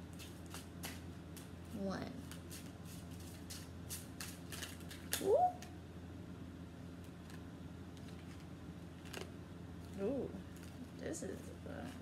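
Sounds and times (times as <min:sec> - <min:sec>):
cards being shuffled: 0:00.1 - 0:01.6, 0:02.2 - 0:05.3, 0:07.0 - 0:10.8
woman saying ooh: 0:05.2 - 0:05.7.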